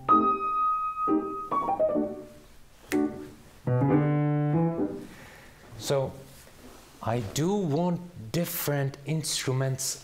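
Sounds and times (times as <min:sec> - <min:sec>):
grand piano playing: 0:00.0 - 0:05.2.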